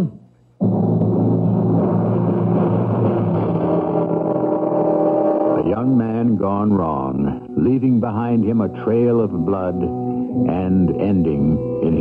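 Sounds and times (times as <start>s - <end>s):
dramatic music chord: 0.6s - 11.1s
man speaking: 5.6s - 9.9s, 10.5s - 12.0s.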